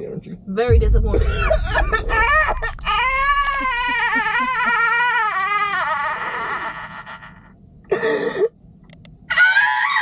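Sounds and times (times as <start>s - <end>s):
man fake crying: 1.2s - 7.4s.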